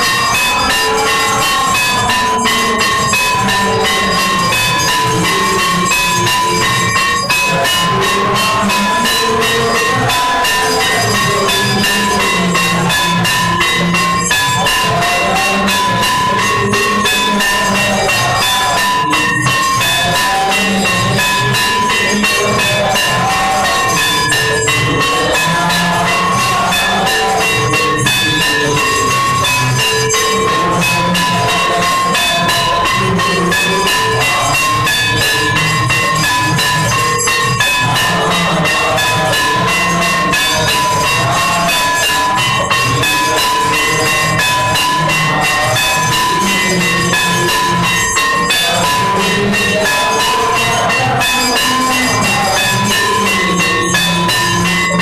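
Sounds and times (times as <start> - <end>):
bells ringing: 0.0 - 55.0
fast continuous percussion: 0.0 - 55.0.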